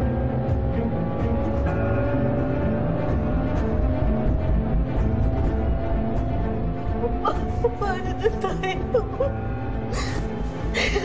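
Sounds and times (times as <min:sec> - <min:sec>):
sombre dramatic music: 0:00.0 - 0:11.0
man crying and sobbing: 0:10.0 - 0:11.0.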